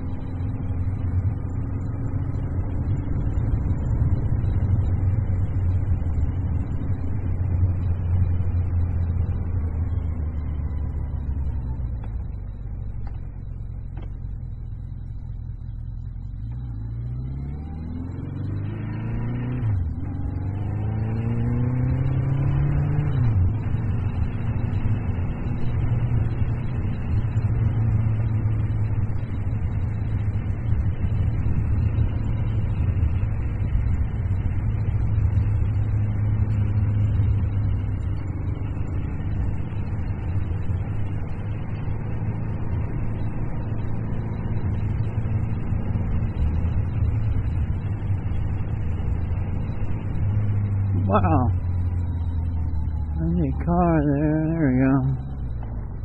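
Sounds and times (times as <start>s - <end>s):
wind and road noise: 0.0s - 56.0s
motorcycle engine accelerating: 16.0s - 56.0s.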